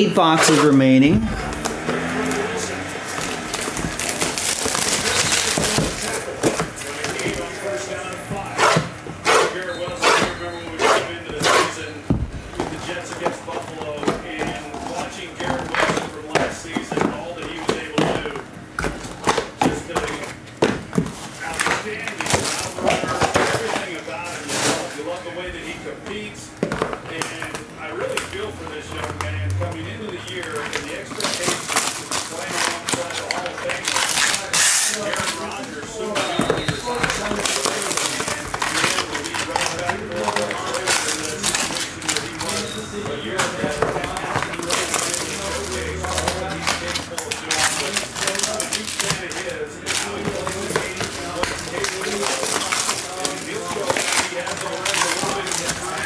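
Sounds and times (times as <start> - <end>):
people talking: 0.0 - 1.4, 4.6 - 18.5, 19.2 - 56.0
foil packs crinkling and ripping: 1.5 - 8.6, 12.7 - 18.3, 21.1 - 26.3, 27.2 - 56.0.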